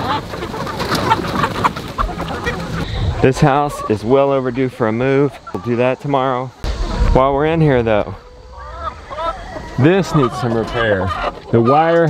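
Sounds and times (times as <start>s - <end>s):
chickens clucking: 0.0s - 12.0s.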